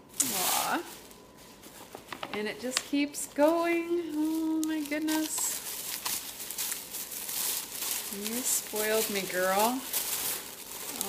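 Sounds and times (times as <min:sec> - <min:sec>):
paper crinkling and rustling: 0:00.1 - 0:11.0.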